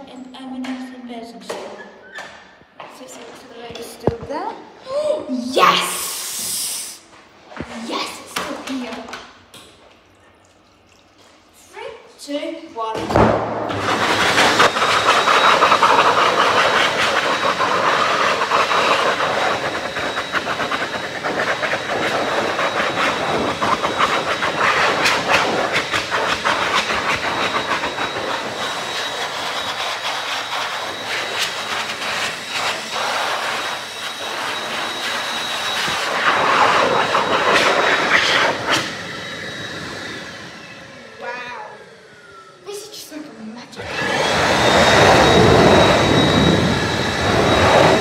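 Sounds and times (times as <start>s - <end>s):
electric hand dryer running: 7.7s - 9.3s, 12.8s - 48.0s.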